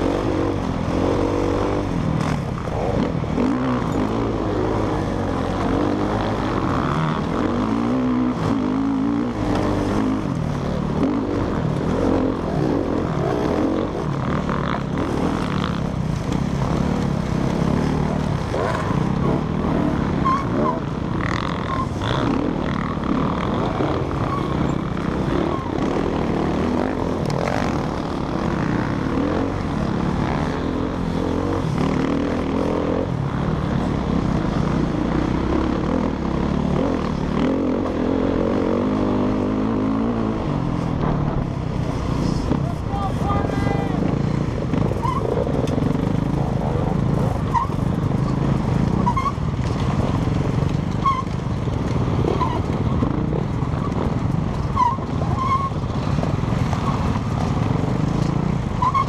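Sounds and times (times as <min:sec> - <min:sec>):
dirt bike engine revving: 0:00.0 - 0:42.8
other dirt bikes running: 0:00.0 - 0:59.0.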